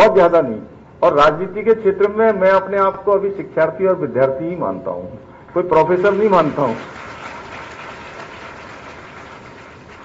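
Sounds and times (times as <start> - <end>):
large audience applauding: 6.0 - 10.0.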